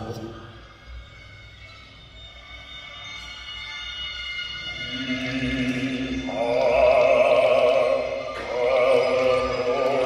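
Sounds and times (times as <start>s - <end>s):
low drone: 4.6s - 10.0s.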